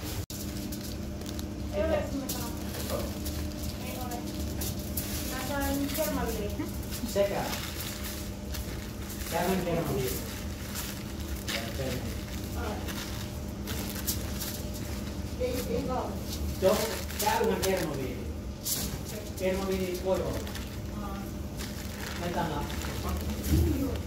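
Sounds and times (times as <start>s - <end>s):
paper crinkling: 0.0s - 24.0s
steady low hum: 0.0s - 24.0s.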